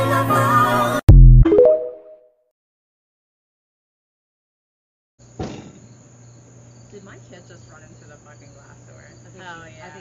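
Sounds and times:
insects chirping: 0:05.2 - 0:10.0.

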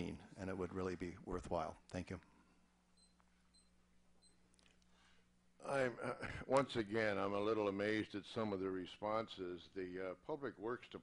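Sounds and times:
faint high-pitched beeps: 0:02.9 - 0:04.5.

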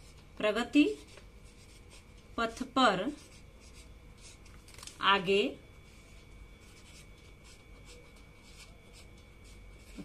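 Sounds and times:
marker scratching on paper: 0:00.8 - 0:04.4, 0:05.8 - 0:10.0.

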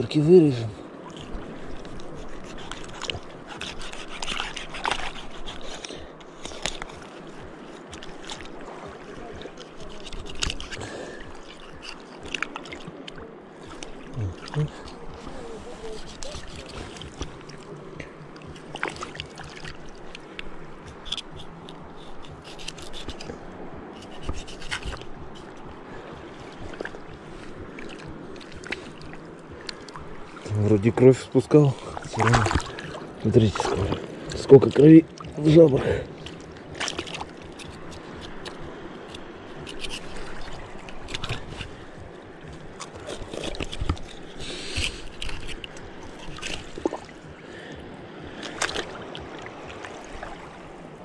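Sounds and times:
water splashing: 0:00.0 - 0:51.0
knife scraping fish: 0:01.2 - 0:08.6, 0:09.6 - 0:12.7, 0:14.9 - 0:17.5, 0:20.9 - 0:23.3, 0:23.9 - 0:25.6, 0:36.8 - 0:41.8, 0:42.8 - 0:46.8
wet handling: 0:31.7 - 0:35.5.

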